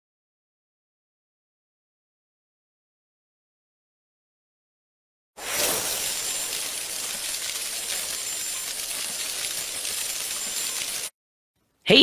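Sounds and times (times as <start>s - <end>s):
bright jingling shimmer: 5.4s - 11.1s.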